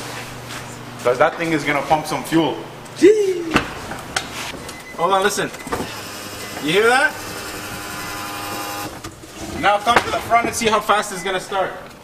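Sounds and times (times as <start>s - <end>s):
electric fuel pump humming: 5.6s - 9.4s.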